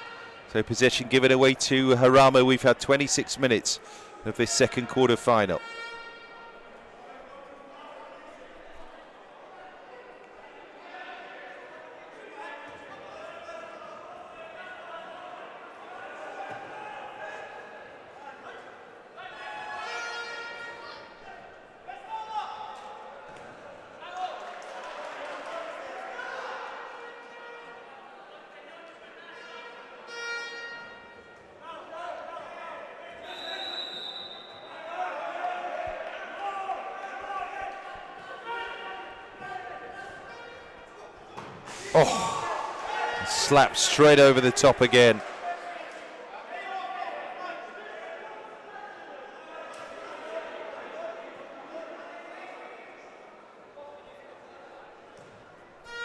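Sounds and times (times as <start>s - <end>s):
players shouting in echoing hall: 0.0s - 53.2s.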